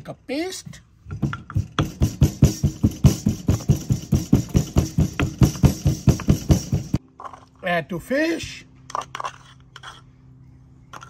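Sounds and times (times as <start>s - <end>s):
wooden pestle pounding in mortar: 1.2s - 7.0s.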